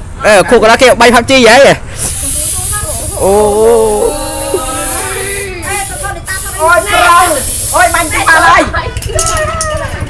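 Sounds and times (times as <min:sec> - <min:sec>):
aerosol cans spraying: 0:01.9 - 0:08.7
voices calling out: 0:02.0 - 0:10.0.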